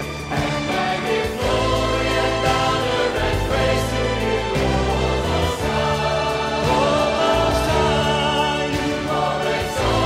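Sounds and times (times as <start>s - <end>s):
group of voices singing: 0.0s - 10.0s
instrumental backing with bass line: 0.0s - 10.0s.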